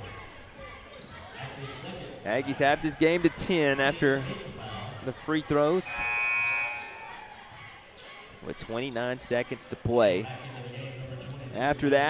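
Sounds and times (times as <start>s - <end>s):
scoreboard horn buzzing: 5.8s - 7.2s.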